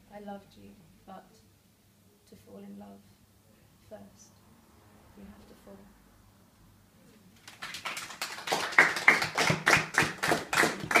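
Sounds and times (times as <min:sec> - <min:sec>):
audience applauding: 0:07.4 - 0:11.0
loud close claps: 0:07.4 - 0:11.0.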